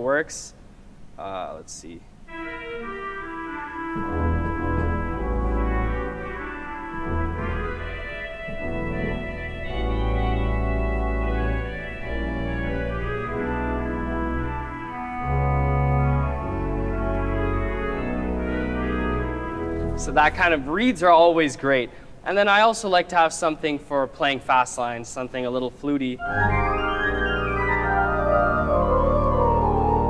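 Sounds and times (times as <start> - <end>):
pipe organ playing jazz chords: 2.2 - 23.5, 26.0 - 30.0
organ clarinet stop melody: 2.3 - 20.9, 26.2 - 30.0
deep organ pedal bass notes: 2.3 - 21.6, 26.2 - 30.0.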